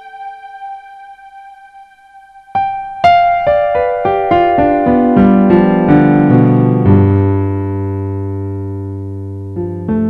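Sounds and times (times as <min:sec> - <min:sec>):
background music chord: 0:00.0 - 0:08.0.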